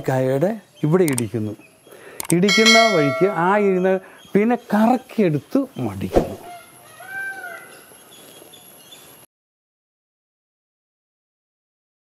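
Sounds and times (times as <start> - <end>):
sharp knock: 2.5 - 3.6
person speaking: 2.5 - 3.8.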